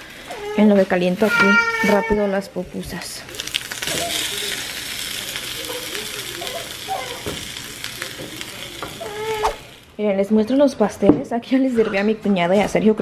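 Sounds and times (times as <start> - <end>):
food sizzling on a griddle: 0.0 - 10.0.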